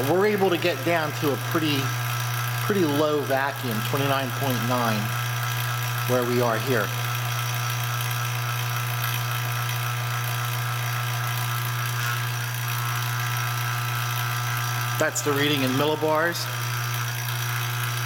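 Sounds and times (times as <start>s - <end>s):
vacuum pump humming: 0.0s - 18.0s.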